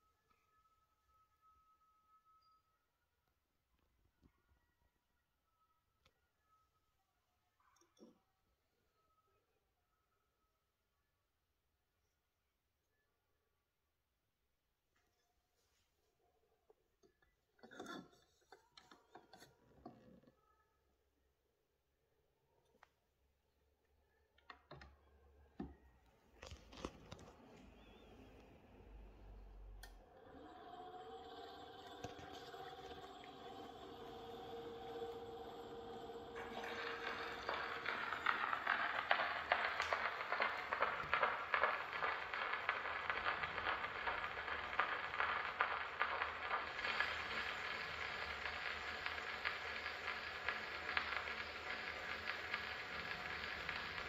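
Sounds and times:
record surface hiss and crackle: 0:26.0 - 0:30.0, 0:30.8 - 0:54.0
phonograph mechanism whirring: 0:30.0 - 0:54.0.

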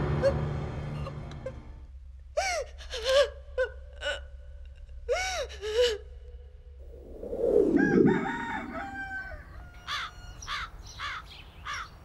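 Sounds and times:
woman sobbing: 0:02.4 - 0:06.2.

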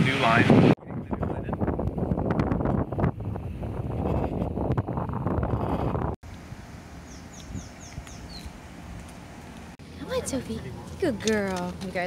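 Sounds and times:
wind buffeting microphone: 0:00.0 - 0:06.2, 0:07.1 - 0:08.5
bird chirping: 0:07.0 - 0:08.5.

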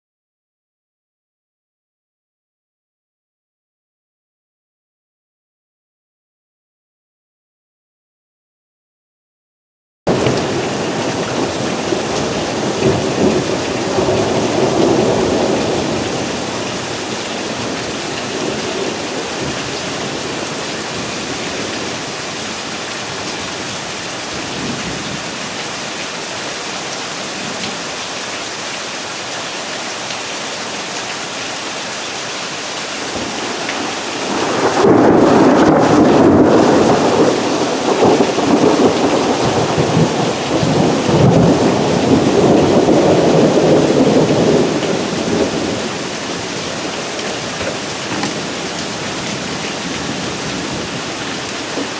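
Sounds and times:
rolling thunder: 0:10.1 - 0:22.1, 0:33.0 - 0:51.9
rain falling on grass and trees: 0:10.1 - 0:51.9.

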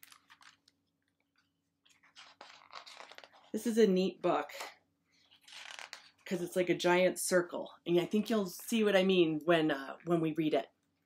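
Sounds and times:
faint book handling clicks and rustles: 0:00.0 - 0:03.6.

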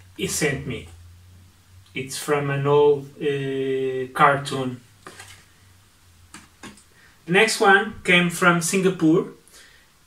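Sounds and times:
postcards clicking and rustling: 0:05.0 - 0:05.5, 0:06.3 - 0:06.8.

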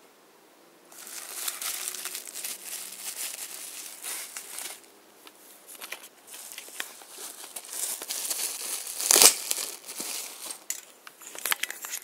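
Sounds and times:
packaging crinkling: 0:00.9 - 0:04.9, 0:05.8 - 0:12.0.

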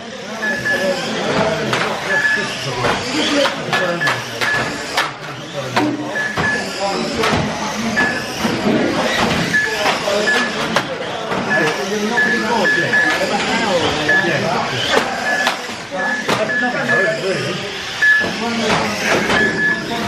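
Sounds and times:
electric motors whining: 0:00.0 - 0:20.0
hubbub of voices: 0:00.0 - 0:20.0
plastic cars clacking: 0:01.3 - 0:12.0
short high electronic beeps: 0:18.0 - 0:18.4.

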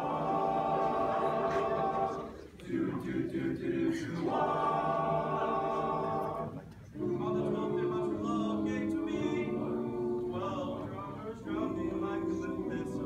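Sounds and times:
boys choir singing held chords: 0:00.0 - 0:13.0.

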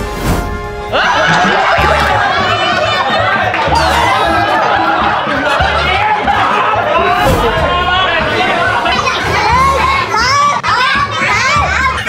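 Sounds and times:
people shouting and cheering: 0:00.9 - 0:12.0.

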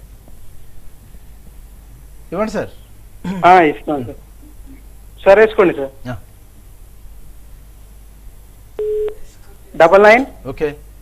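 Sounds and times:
faint low line hum: 0:00.0 - 0:11.0
telephone line beep: 0:08.8 - 0:09.2.

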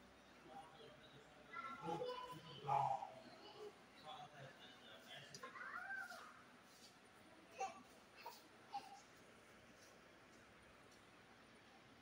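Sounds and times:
faint background voices: 0:00.0 - 0:09.2.

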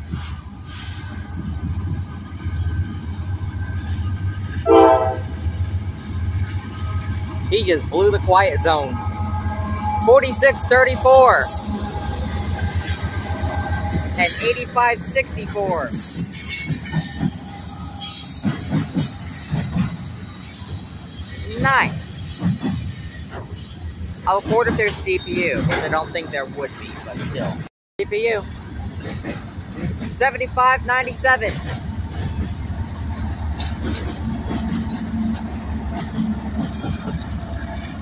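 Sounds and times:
diesel locomotives rumbling: 0:00.0 - 0:38.0
train horn blast: 0:04.6 - 0:05.4
faint high wheel squeal: 0:15.8 - 0:25.6
wheels clacking over rail joints: 0:28.6 - 0:38.0.

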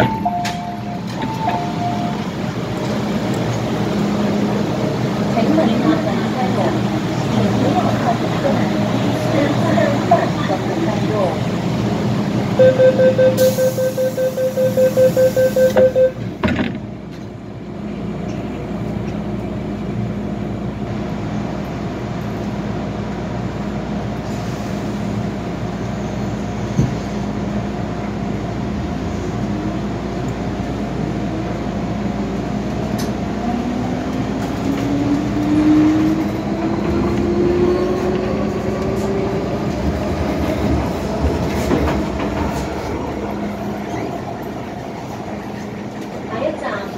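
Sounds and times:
door-closing warning beeps: 0:00.0 - 0:02.2, 0:12.6 - 0:16.2
train doors thumping shut: 0:00.0 - 0:02.2, 0:15.7 - 0:16.9, 0:26.7 - 0:27.1
steady hum in train car: 0:00.0 - 0:46.9.

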